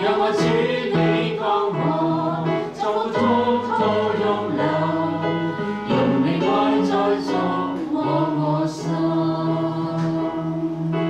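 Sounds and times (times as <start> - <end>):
electronic keyboard worship song: 0.0 - 11.0.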